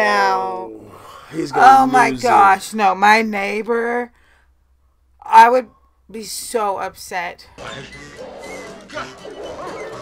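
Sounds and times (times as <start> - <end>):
film music: 7.6 - 10.0
dogs barking and whining: 7.7 - 10.0.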